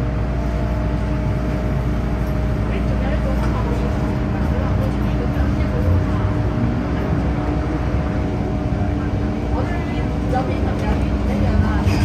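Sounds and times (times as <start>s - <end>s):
train motor hum: 0.0s - 12.0s
train wheels rumbling on rail: 0.0s - 12.0s.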